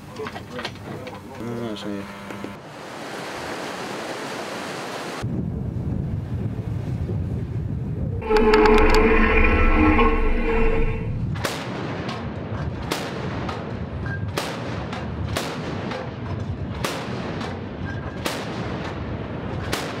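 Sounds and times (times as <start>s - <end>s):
wind: 0.0s - 20.0s
sea noise: 2.6s - 5.2s, 8.2s - 11.4s.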